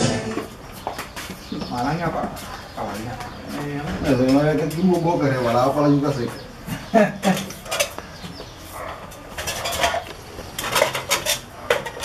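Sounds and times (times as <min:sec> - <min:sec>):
knife and pans clinking on board: 0:09.1 - 0:12.0.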